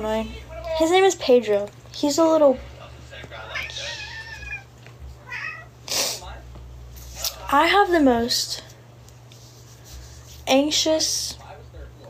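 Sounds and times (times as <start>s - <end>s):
cat meowing: 3.5s - 5.8s.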